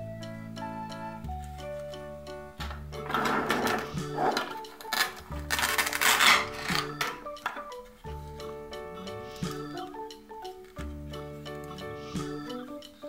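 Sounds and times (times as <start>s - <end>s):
light melodic background music: 0.0s - 13.0s
plastic toy pieces scraping: 3.0s - 7.6s.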